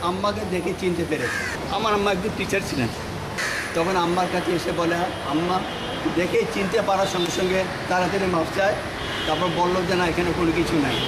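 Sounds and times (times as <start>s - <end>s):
man speaking: 0.0s - 3.1s, 3.8s - 11.0s
birds cawing: 1.1s - 2.1s, 2.7s - 4.3s.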